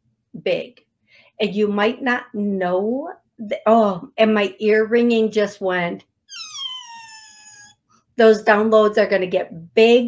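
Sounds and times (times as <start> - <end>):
high-pitched whine falling in pitch: 6.3 - 7.7.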